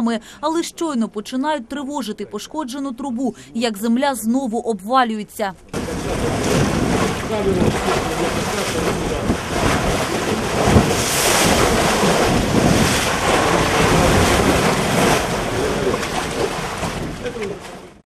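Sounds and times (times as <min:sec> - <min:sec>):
sewage water gushing and churning: 0:05.7 - 0:18.0.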